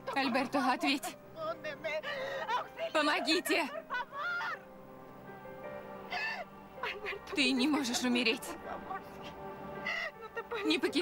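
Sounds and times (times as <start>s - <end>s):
soft background music: 0.0s - 11.0s
woman wailing: 2.0s - 4.7s.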